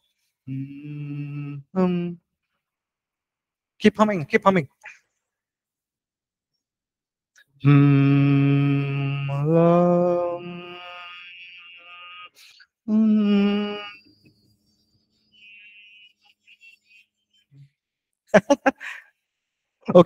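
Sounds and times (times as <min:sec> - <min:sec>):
man humming into microphone: 0:00.5 - 0:02.2, 0:07.6 - 0:14.5.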